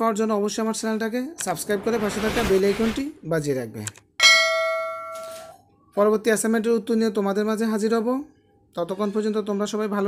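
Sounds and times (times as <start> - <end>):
bright bell ding: 4.2 - 5.6.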